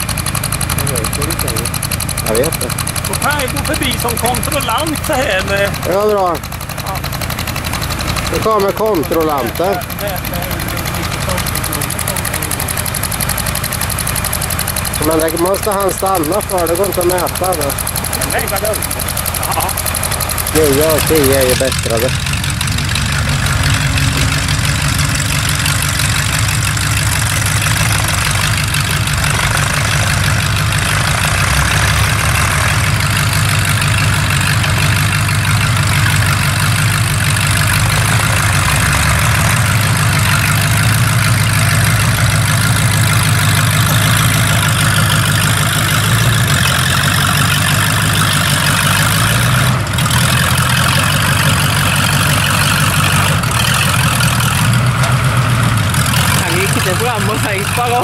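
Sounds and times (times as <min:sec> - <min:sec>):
tractor engine running under load: 0:00.0 - 0:58.0.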